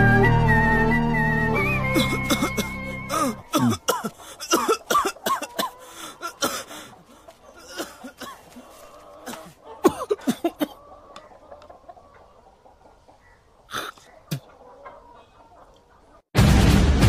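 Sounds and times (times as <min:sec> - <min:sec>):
person coughing hoarsely: 0:02.0 - 0:06.8, 0:07.6 - 0:08.5, 0:09.3 - 0:10.8, 0:13.7 - 0:14.0.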